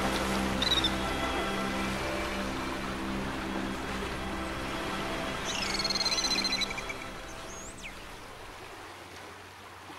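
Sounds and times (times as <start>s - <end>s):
orchestral music: 0.0s - 7.9s.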